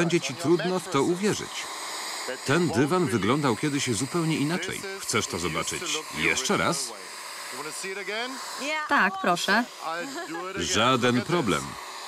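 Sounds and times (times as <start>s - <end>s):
person speaking: 0.0s - 1.6s, 2.3s - 7.0s, 7.8s - 11.8s
carpet washer motor and suction: 0.0s - 12.0s.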